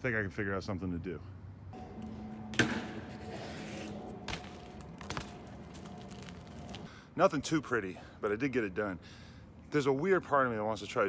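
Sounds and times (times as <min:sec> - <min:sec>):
bike hitting concrete ledge: 0:02.5 - 0:06.3
bike scraping along ledge: 0:02.6 - 0:06.9.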